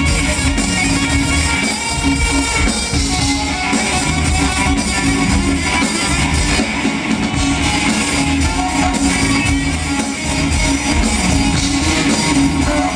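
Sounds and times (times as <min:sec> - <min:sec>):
bass line: 0:00.0 - 0:12.9
drum kit beat: 0:00.0 - 0:12.9
electric guitar: 0:00.0 - 0:12.9.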